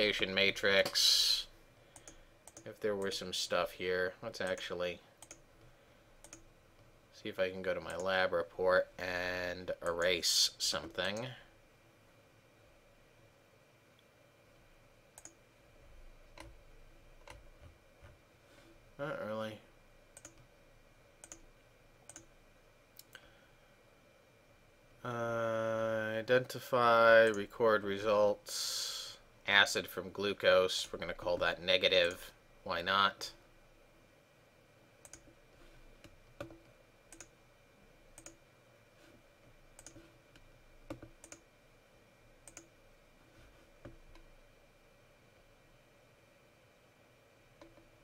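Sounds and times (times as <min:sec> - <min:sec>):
computer mouse clicks: 0:02.0 - 0:03.1, 0:04.4 - 0:05.4, 0:06.2 - 0:06.5, 0:15.2 - 0:15.4, 0:20.2 - 0:20.5, 0:21.2 - 0:21.5, 0:22.1 - 0:22.3, 0:35.0 - 0:35.4, 0:36.0 - 0:37.3, 0:38.2 - 0:38.4, 0:39.8 - 0:41.4, 0:42.4 - 0:42.7, 0:47.6 - 0:47.9.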